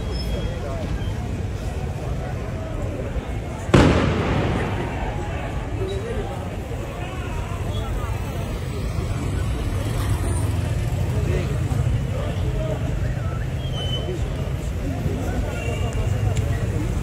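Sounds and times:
people's voices: 0:00.0 - 0:17.0
vehicle engines rumbling: 0:00.0 - 0:17.0.

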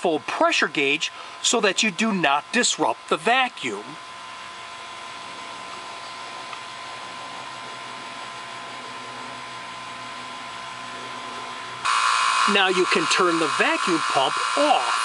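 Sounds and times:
vacuum pump humming and whining: 0:00.0 - 0:15.0.

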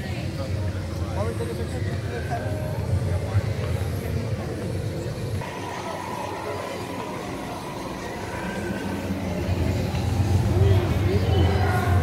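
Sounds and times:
crowd ambience: 0:00.0 - 0:12.0.

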